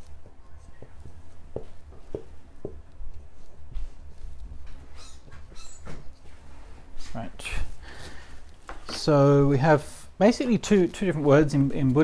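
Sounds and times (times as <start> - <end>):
low room hum: 0.0 - 12.0
marker pen squeaking on board: 4.6 - 6.1.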